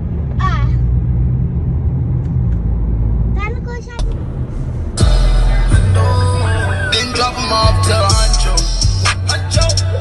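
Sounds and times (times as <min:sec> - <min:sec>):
car driving in traffic: 0:00.0 - 0:10.0.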